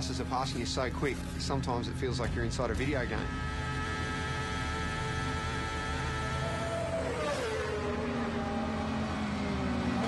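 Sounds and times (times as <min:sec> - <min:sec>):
racing motorcycle passing: 0:03.1 - 0:10.0.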